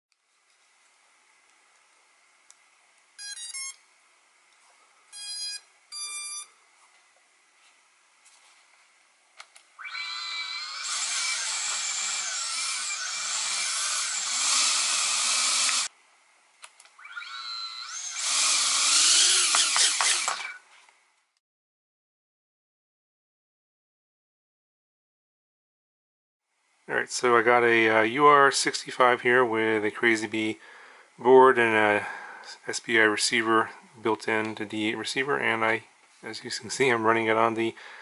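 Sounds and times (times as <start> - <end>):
short electronic beeps: 3.2 - 3.8, 5.2 - 6.5
small drone motors whining: 9.8 - 15.9, 17.0 - 20.6.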